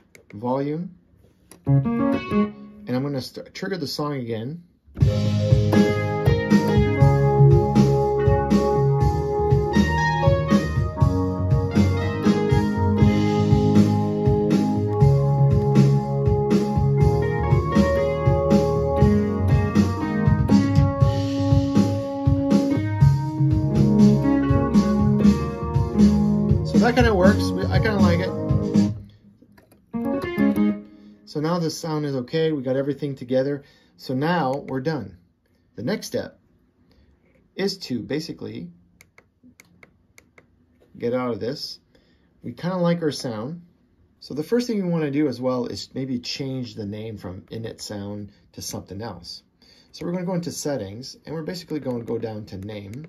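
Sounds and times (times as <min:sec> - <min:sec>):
keyboard music with organ chords: 0:01.6 - 0:02.9, 0:05.0 - 0:29.2, 0:29.8 - 0:31.3
bass line: 0:05.0 - 0:29.1.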